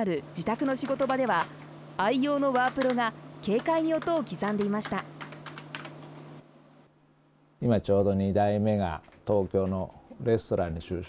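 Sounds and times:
keyboard typing: 0.5s - 1.6s, 2.3s - 6.2s.

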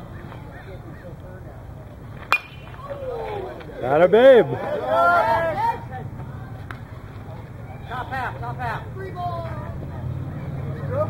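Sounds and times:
faint voices: 0.0s - 11.0s
metal bat hitting ball: 2.2s - 2.9s.

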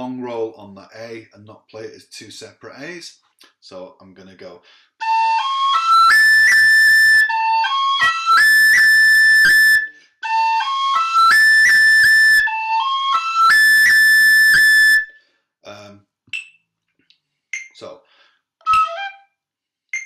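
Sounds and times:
tin whistle melody: 5.0s - 15.2s, 18.6s - 19.4s.

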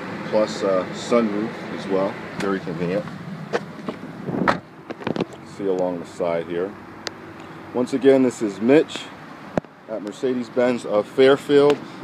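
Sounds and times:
clicks and rustling: 3.5s - 5.4s.

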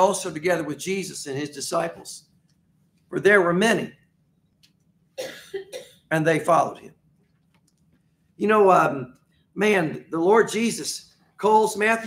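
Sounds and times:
man coughing: 5.2s - 6.1s.

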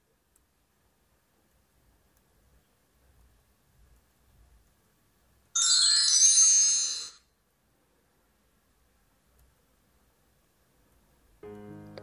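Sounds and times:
high-pitched chime: 5.6s - 7.3s.

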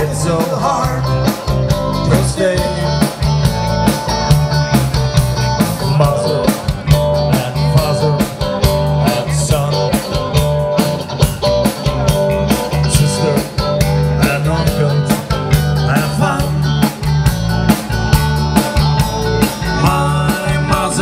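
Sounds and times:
bass guitar: 0.0s - 21.0s
drum kit steady beat: 0.0s - 21.0s
electric guitar: 0.0s - 21.0s.

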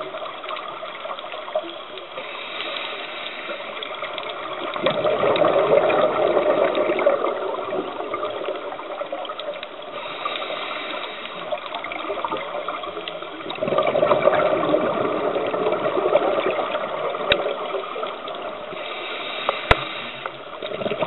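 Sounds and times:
faint clicks: 0.0s - 5.5s, 8.2s - 13.8s, 17.1s - 21.0s
underwater bubbles gurgling: 0.0s - 21.0s.

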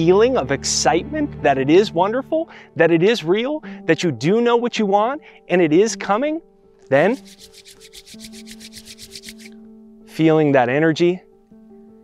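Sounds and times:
soft background music: 0.0s - 12.0s
palms rubbing together: 6.9s - 9.6s.

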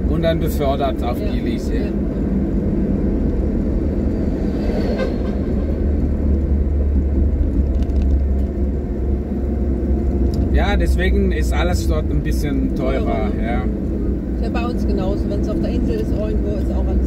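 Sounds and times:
car engine and road rumble: 0.0s - 17.0s.

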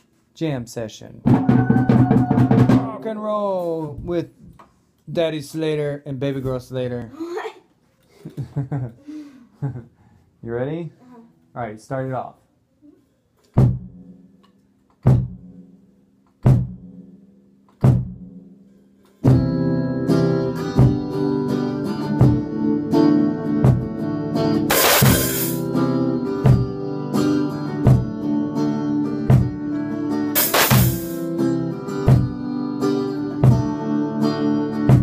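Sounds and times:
drum kit: 1.2s - 3.2s, 13.6s - 14.3s, 15.0s - 15.8s, 16.4s - 18.6s, 19.2s - 19.7s, 20.6s - 21.4s, 22.0s - 28.2s, 29.2s - 29.7s, 30.3s - 33.8s, 34.7s - 35.0s
guitar: 1.2s - 4.3s, 19.0s - 35.0s
cymbal crash: 24.7s - 25.7s, 30.4s - 31.3s.

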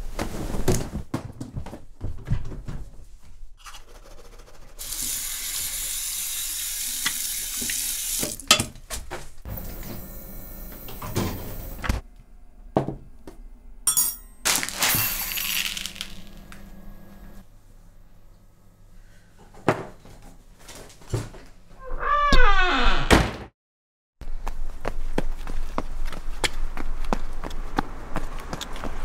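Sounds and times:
water running into a sink: 4.8s - 8.5s
ceramic bowl set on table: 13.9s - 14.5s
crockery clinking: 13.9s - 14.6s.

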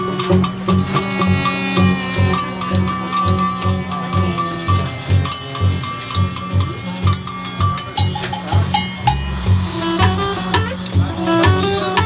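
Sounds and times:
bass pulse: 0.0s - 12.0s
harmonica notes: 0.0s - 12.0s
high metallic percussion strikes: 0.0s - 12.0s
street band music: 0.0s - 12.0s.

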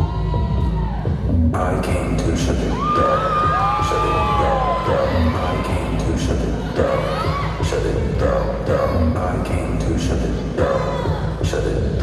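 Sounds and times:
audience cheering and whooping: 0.0s - 1.3s, 2.6s - 7.6s
music with deep bass: 0.0s - 12.0s.

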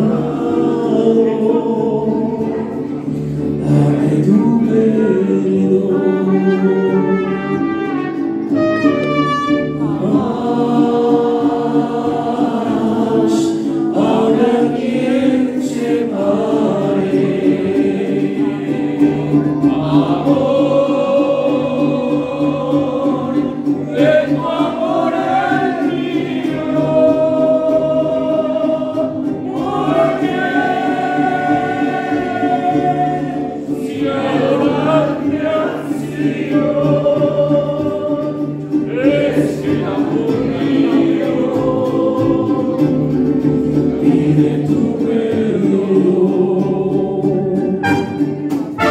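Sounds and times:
group singing in chorus: 0.0s - 48.9s
strummed guitars: 0.0s - 48.9s.

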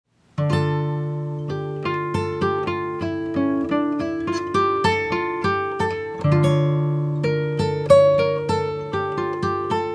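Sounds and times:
acoustic guitar plucked notes: 0.3s - 9.9s.

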